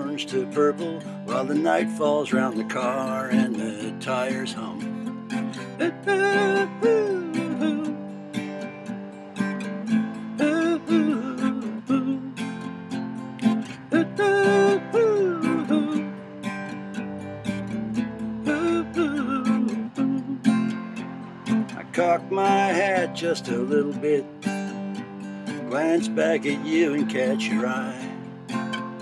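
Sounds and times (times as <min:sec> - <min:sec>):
acoustic guitar strumming: 0:00.0 - 0:29.0
sliding melody line: 0:13.4 - 0:28.0.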